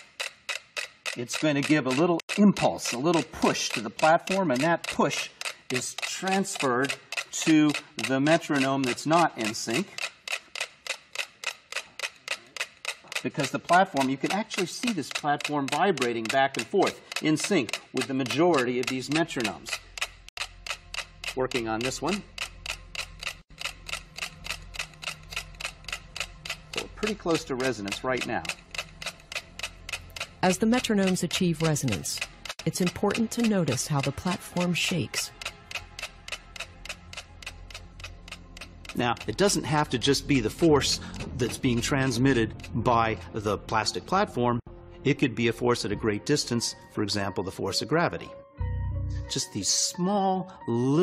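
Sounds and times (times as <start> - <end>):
metronomes ticking: 0.0 - 43.9.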